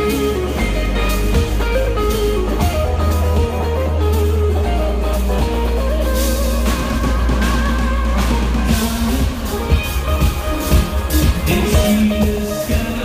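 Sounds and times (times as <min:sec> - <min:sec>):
bass guitar: 0:00.0 - 0:13.0
drums: 0:00.0 - 0:13.0
electric guitar melody: 0:00.0 - 0:13.0.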